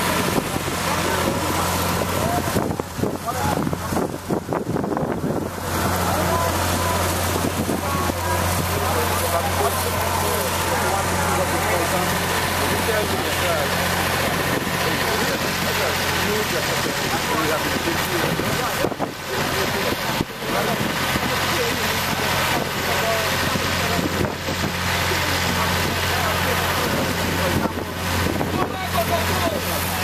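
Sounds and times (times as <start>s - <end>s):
engine humming: 0.0s - 30.0s.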